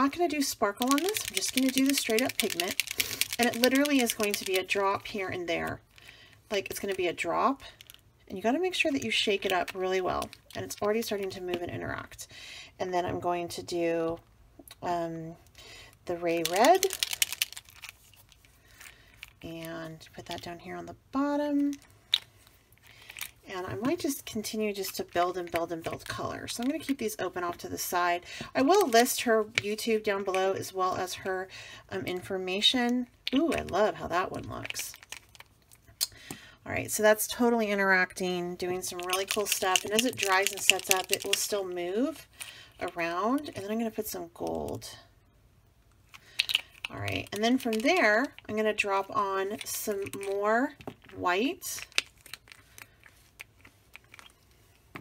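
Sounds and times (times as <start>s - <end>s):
plastic bottle clicks and rattles: 0.8s - 4.6s, 39.0s - 41.5s.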